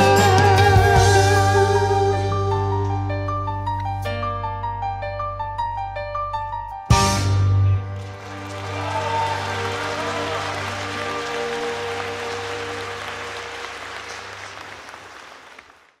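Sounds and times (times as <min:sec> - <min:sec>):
audience applauding: 0:07.8 - 0:16.0.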